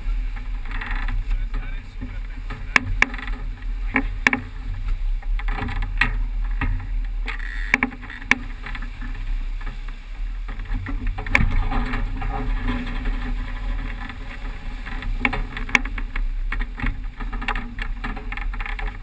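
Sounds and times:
water rushing along hull: 0:00.0 - 0:19.0
wind rumbling on microphone: 0:00.0 - 0:19.0
boat gear knocks and clicks: 0:00.2 - 0:19.0.

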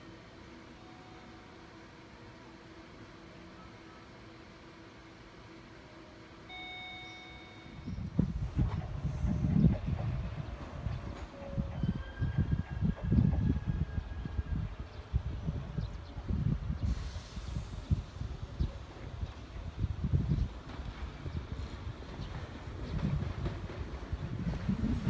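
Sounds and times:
faint trains approaching: 0:00.0 - 0:25.0
short electronic beep: 0:06.5 - 0:08.1
wind buffeting microphone: 0:07.8 - 0:25.0.

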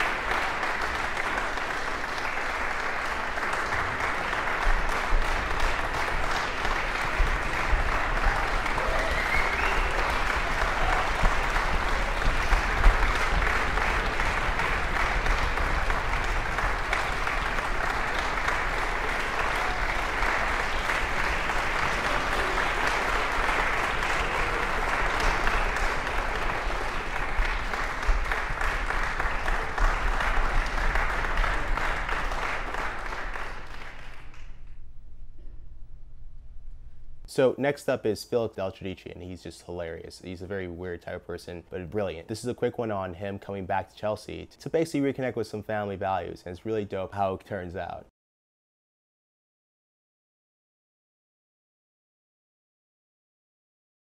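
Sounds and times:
audience applauding: 0:00.0 - 0:34.7.

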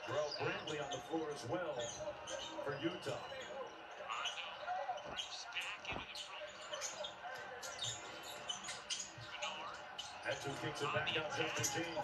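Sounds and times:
sneaker squeaks: 0:00.0 - 0:10.3.

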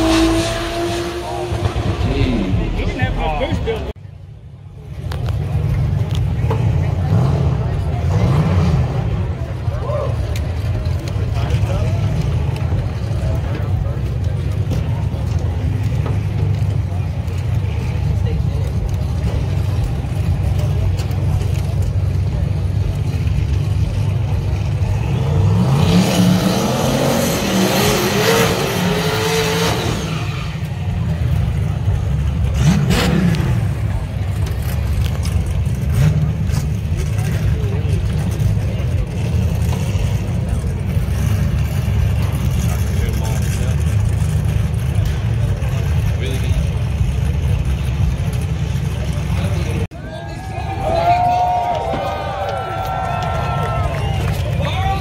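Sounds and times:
engine revving: 0:00.0 - 0:04.0, 0:07.1 - 0:09.3, 0:24.3 - 0:49.9
car engines rumbling: 0:00.0 - 0:55.0
tire noise: 0:00.0 - 0:55.0.

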